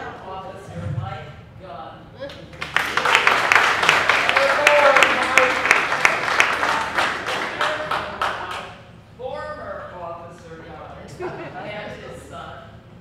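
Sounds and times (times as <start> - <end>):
audience applauding: 2.5 - 8.7.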